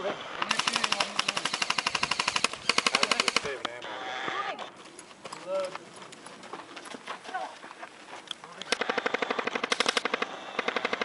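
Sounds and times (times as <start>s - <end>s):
airsoft rifles firing bursts: 0.4s - 3.6s, 8.6s - 11.0s.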